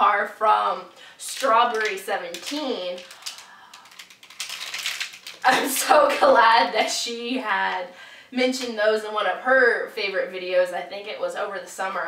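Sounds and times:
plastic wrapper crinkling: 0:01.2 - 0:05.9.

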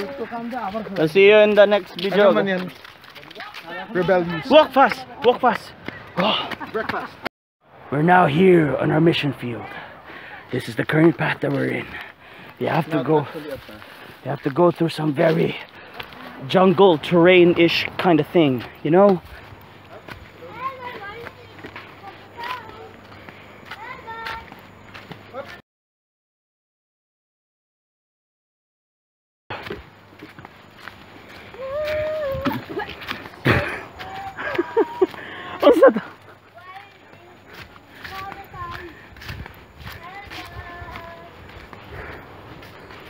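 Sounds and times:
footsteps on dry leaves: 0:12.6 - 0:25.6, 0:29.5 - 0:43.0.

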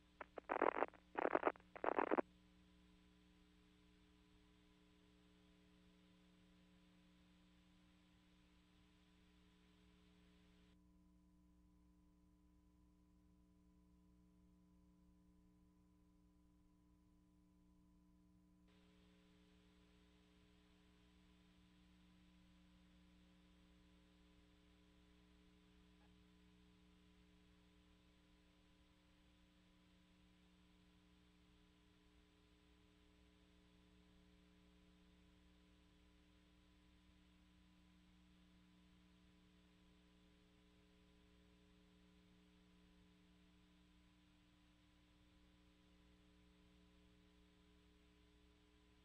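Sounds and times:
crackly noise bursts: 0:00.0 - 0:02.2
faint steady hum: 0:00.0 - 0:49.0.

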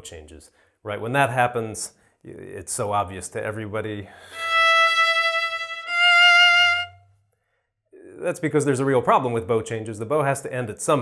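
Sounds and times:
solo violin bowing sustained notes: 0:04.3 - 0:07.0.

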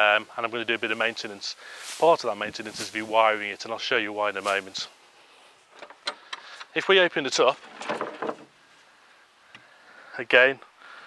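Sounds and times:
faint outdoor background: 0:00.0 - 0:11.0
knock and rustle: 0:07.5 - 0:08.6.

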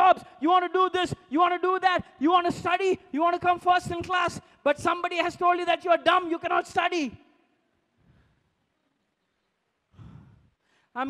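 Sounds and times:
man exhaling breathily: 0:09.9 - 0:10.8.

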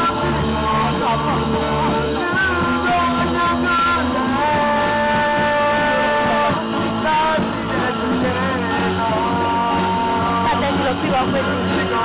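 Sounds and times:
song with singer guitar and bass: 0:00.0 - 0:12.0.

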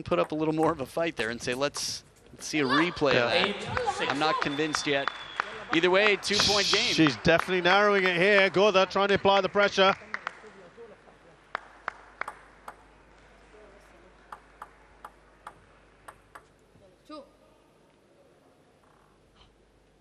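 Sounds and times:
table tennis ball bouncing: 0:00.0 - 0:01.9, 0:11.6 - 0:12.9, 0:14.3 - 0:16.6.

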